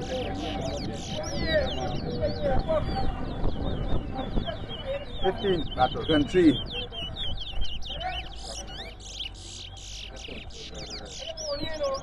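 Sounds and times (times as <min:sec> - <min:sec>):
finches singing with whistled trills: 0:00.0 - 0:12.0.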